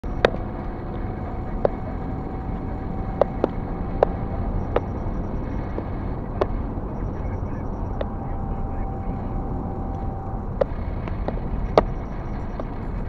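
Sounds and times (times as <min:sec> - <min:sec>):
car engine and tyre noise: 0:00.0 - 0:13.0
sharp clicks: 0:09.9 - 0:13.0.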